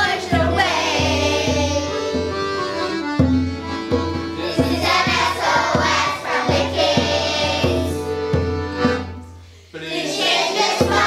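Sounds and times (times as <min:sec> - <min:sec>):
children singing in chorus: 0:00.0 - 0:02.0, 0:04.4 - 0:08.1, 0:09.8 - 0:11.0
backing music with a beat: 0:00.0 - 0:09.5, 0:10.2 - 0:11.0.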